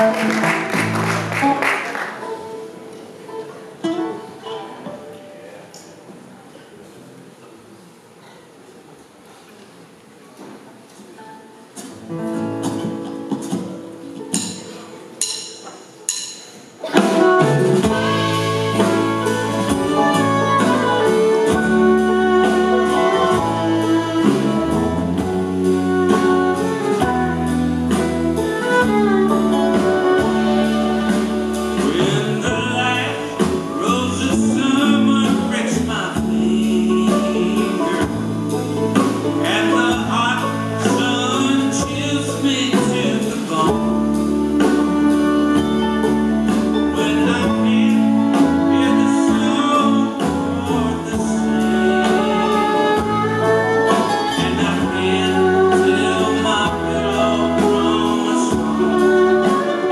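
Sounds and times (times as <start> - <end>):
bluegrass band playing: 0.0 - 5.8, 11.2 - 59.9
plucked acoustic strings: 11.8 - 59.9.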